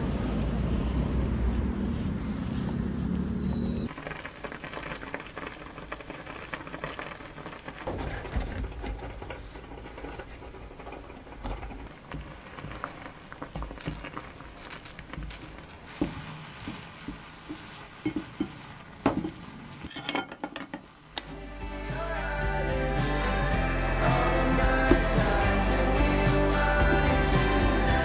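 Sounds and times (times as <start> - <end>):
water boiling in a pan: 2.6 - 21.2.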